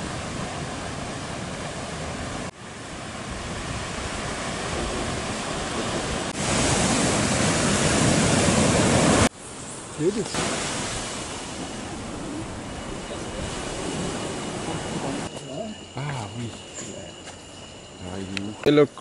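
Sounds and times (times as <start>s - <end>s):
surf washing over rocks: 0.0s - 15.3s.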